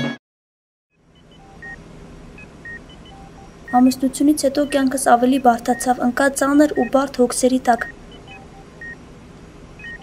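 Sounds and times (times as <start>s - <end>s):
short electronic beeps: 1.2s - 1.8s, 7.8s - 9.0s, 9.8s - 10.0s.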